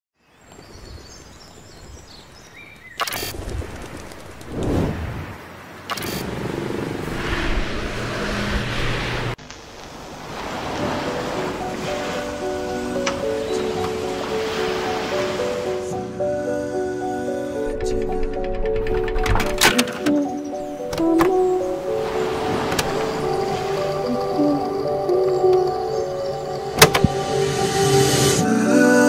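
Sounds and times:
loud rushing noise: 3.6 - 9.4
slow music of held notes: 11.0 - 29.0.

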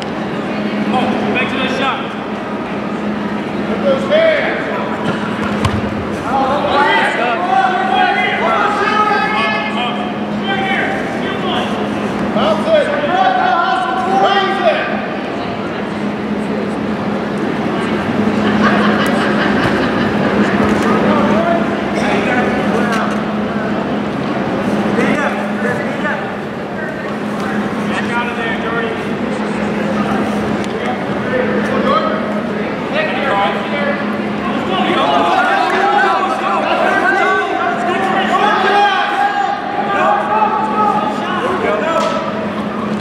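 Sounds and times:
steady low hum: 0.0 - 43.0
voices calling out: 0.1 - 43.0.

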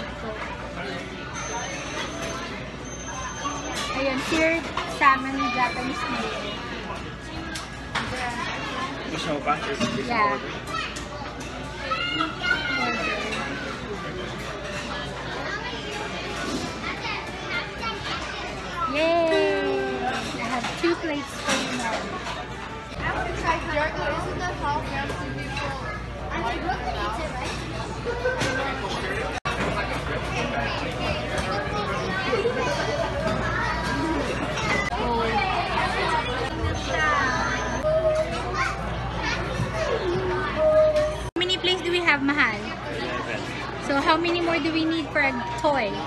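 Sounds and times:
children chattering: 0.0 - 9.6, 10.3 - 46.0.

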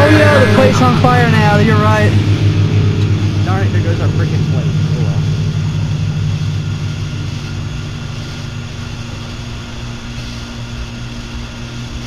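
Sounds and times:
microwave oven humming: 0.0 - 12.0.

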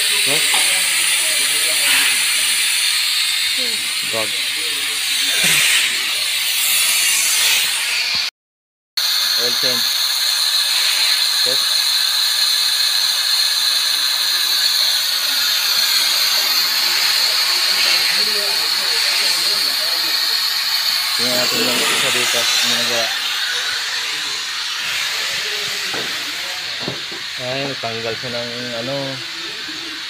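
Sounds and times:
compressed air hissing: 0.0 - 8.3, 9.0 - 30.0.

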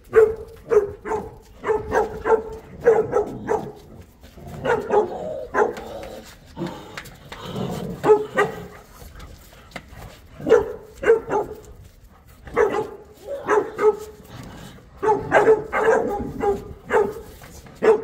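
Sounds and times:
dogs barking in play: 0.0 - 18.0.

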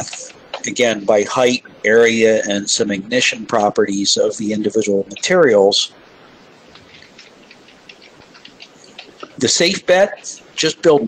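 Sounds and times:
faint steady hiss: 0.0 - 11.0
soft irregular ticks: 4.6 - 10.7.

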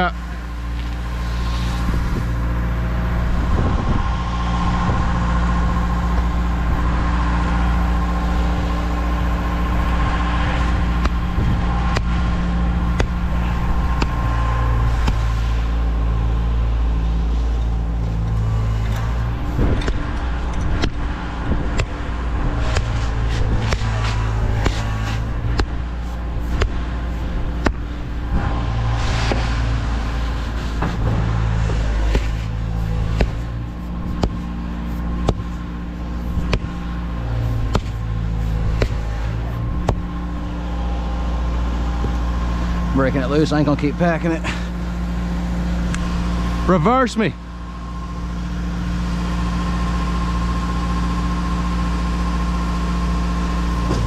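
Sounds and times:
pump truck engine running: 0.0 - 54.0
sledgehammer striking a hose: 10.0 - 15.8, 18.5 - 40.5.

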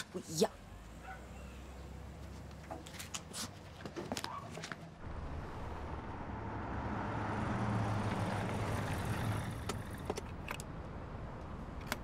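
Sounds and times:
vehicle driving by: 5.0 - 10.1.

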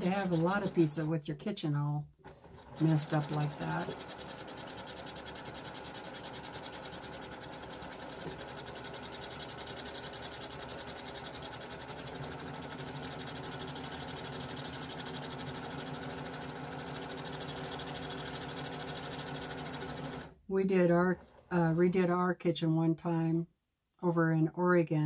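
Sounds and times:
bobbin winder motor hum: 0.0 - 1.1, 2.2 - 20.4.

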